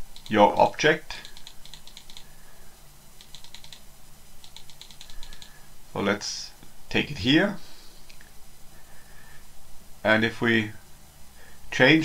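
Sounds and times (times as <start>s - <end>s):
computer mouse clicking: 0.1s - 0.4s, 1.2s - 2.3s, 3.2s - 3.8s, 4.4s - 5.6s.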